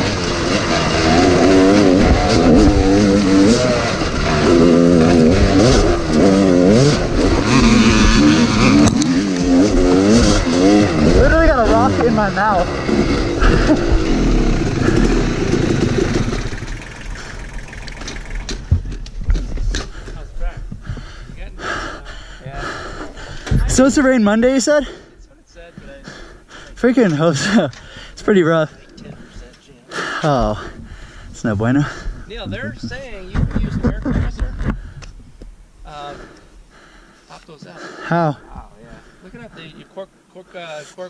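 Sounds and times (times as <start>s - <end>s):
dirt bike engine revving: 0.0s - 20.3s
scattered clicks: 17.6s - 19.9s.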